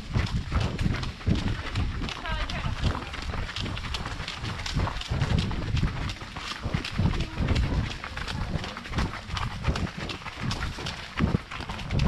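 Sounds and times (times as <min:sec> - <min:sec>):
horse hooves on gravel: 0:00.0 - 0:12.0.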